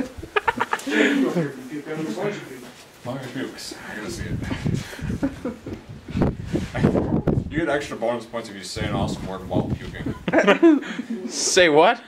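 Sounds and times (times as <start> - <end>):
man laughing: 0.0 - 1.6, 4.4 - 5.8, 10.0 - 11.5.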